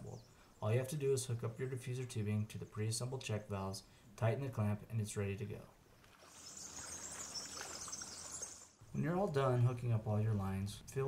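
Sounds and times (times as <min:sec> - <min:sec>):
high-pitched hiss or chirring: 0:06.2 - 0:08.8.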